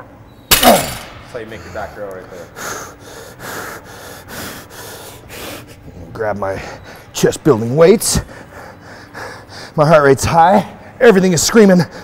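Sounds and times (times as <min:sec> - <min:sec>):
man breathing hard: 0:02.3 - 0:05.9, 0:08.2 - 0:09.8.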